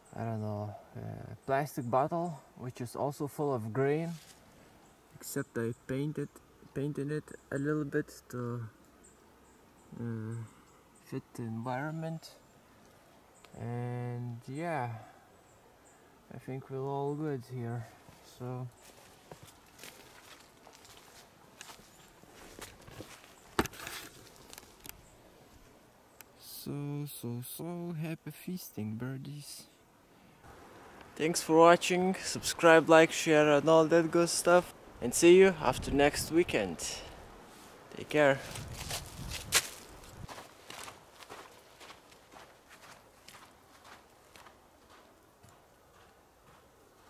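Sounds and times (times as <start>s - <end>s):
footsteps through leaves and snow: 4.1s - 4.5s, 18.0s - 24.8s, 38.4s - 45.1s
twig snapping: 23.6s - 25.0s.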